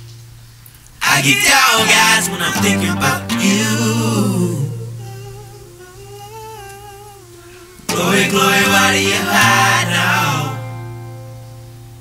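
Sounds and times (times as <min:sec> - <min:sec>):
soft hummed vocal note: 0:01.0 - 0:10.7
band with loud singing: 0:07.9 - 0:10.7.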